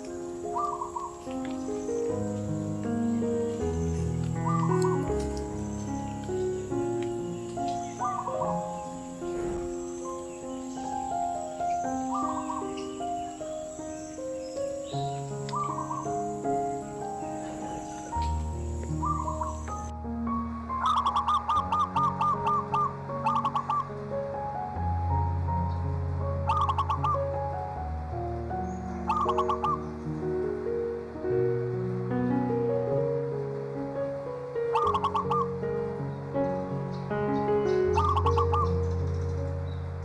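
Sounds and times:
bird calling: 0.0 - 19.9, 20.7 - 24.0, 26.5 - 27.3, 28.6 - 30.1, 34.7 - 35.7, 37.3 - 39.8
soft piano music: 0.0 - 40.0.

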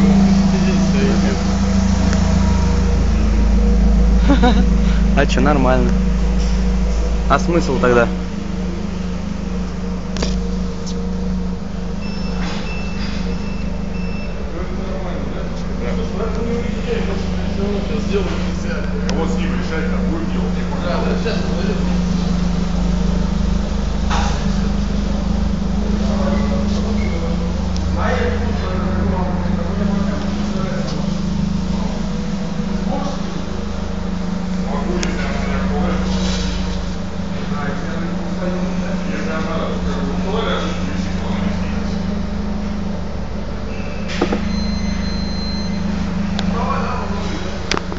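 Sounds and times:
car engine idling: 0.0 - 47.9
low mechanical hum: 0.0 - 47.9.

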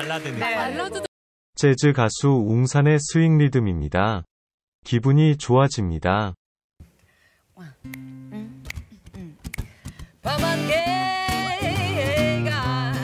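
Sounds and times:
acoustic guitar swing rhythm: 7.8 - 13.0
woman singing jazz: 10.2 - 13.0.

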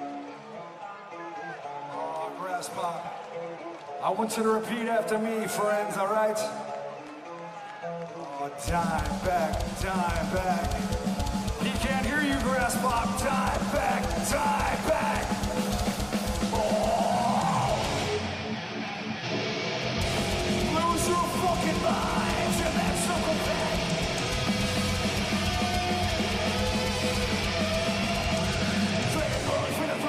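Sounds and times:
metal band playing live: 8.6 - 30.0.

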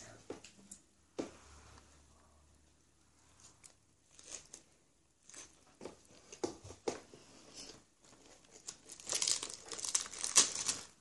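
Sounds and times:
lettuce leaves crinkling and tearing: 3.6 - 5.6, 8.2 - 11.0.

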